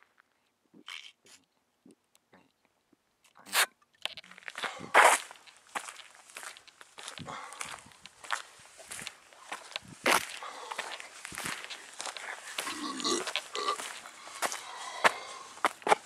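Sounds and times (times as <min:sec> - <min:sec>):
footsteps walking: 0:04.2 - 0:16.0.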